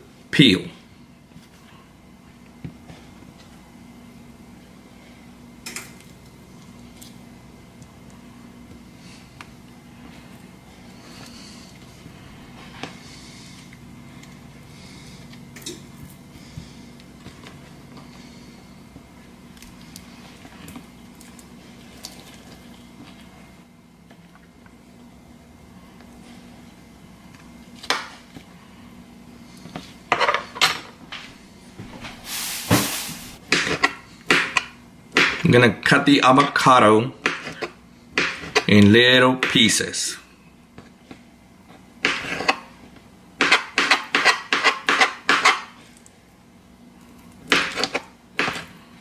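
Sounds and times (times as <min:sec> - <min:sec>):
steady low hum: 0:00.0 - 0:49.0.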